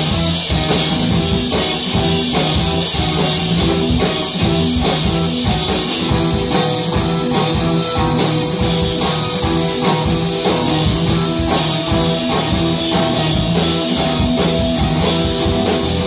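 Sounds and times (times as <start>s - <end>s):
regular drum beat: 0.0s - 16.0s
rock band playing: 0.0s - 16.0s.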